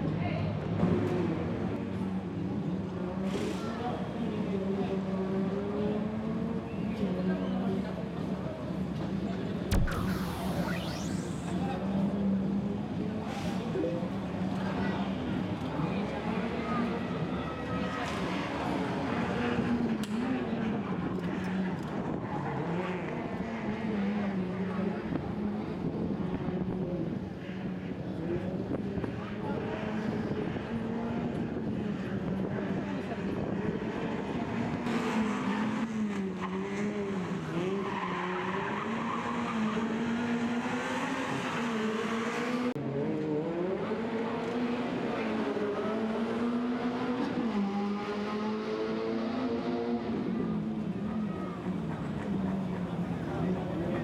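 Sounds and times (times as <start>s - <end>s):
car engine revving: 9.7s - 13.1s.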